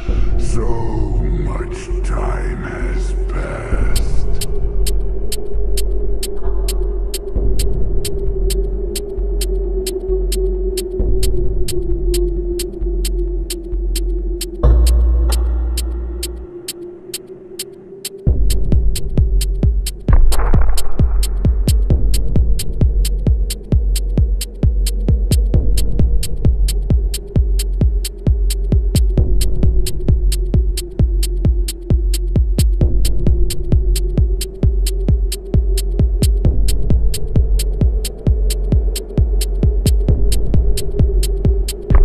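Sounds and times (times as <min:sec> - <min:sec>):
minimal techno music: 0:03.0 - 0:42.0.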